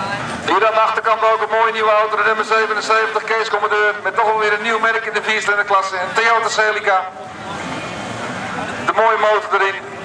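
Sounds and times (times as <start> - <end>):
race car engines running: 0.0 - 10.0.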